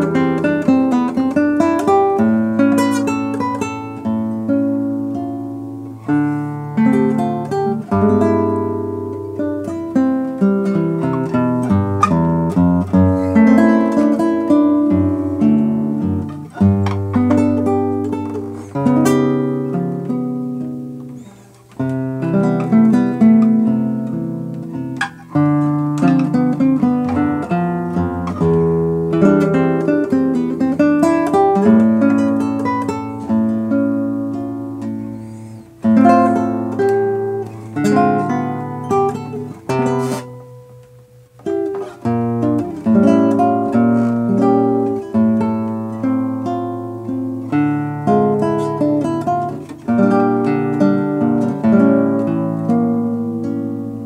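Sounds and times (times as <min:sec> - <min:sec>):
fingerstyle classical guitar: 0:00.0 - 0:54.0.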